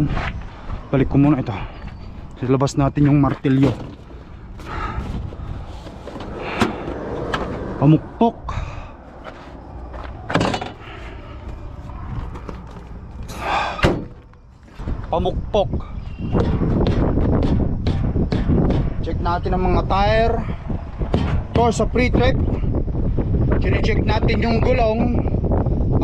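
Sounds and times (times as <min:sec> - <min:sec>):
wind rumble on microphone: 0:00.0 - 0:26.0
rustling of tools and jugs: 0:01.5 - 0:07.6, 0:09.1 - 0:15.0
hammer thumping truck tire: 0:16.4 - 0:19.1, 0:21.0 - 0:21.8.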